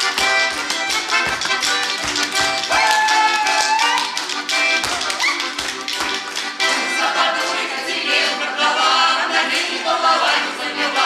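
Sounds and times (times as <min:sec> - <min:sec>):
folk dance tune on accordion: 0:00.0 - 0:11.0.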